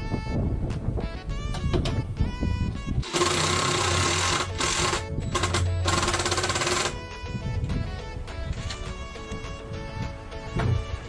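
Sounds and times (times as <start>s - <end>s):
background music: 0.0s - 11.0s
cordless drill driving screws: 3.0s - 7.0s.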